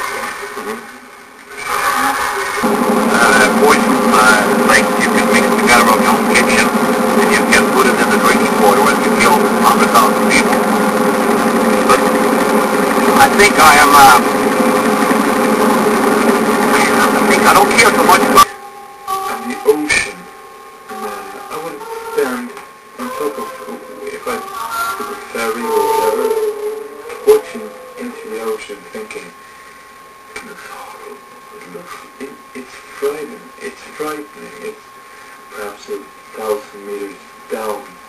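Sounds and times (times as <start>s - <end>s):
high-pitched tone: 1.9s - 28.9s.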